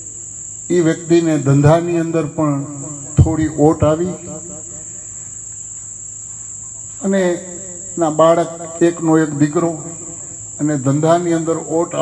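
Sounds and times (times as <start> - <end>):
crickets trilling: 0.0 - 12.0
man speaking through microphone: 0.7 - 4.6, 7.0 - 12.0.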